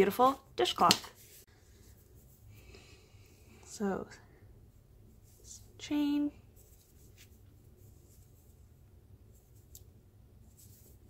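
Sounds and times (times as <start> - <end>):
hands rustling cloth and yarn: 0.8 - 2.8, 3.5 - 11.0.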